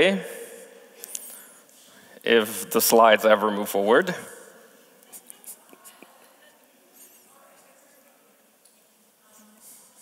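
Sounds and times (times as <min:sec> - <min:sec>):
man speaking: 0:00.0 - 0:00.6, 0:02.2 - 0:04.4.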